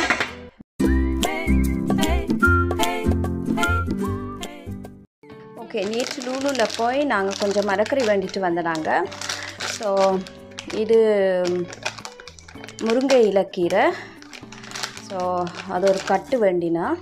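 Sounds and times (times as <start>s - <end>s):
light background music: 0.8s - 17.0s
woman talking: 5.6s - 11.7s, 12.8s - 14.2s, 15.0s - 17.0s.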